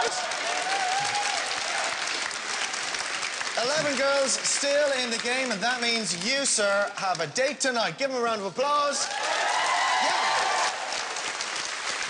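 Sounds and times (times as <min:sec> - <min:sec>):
audience applauding: 0:00.0 - 0:07.2, 0:08.9 - 0:12.0.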